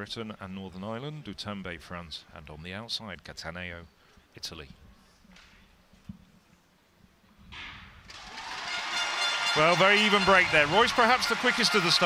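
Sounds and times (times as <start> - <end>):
stadium crowd noise: 8.1 - 12.0.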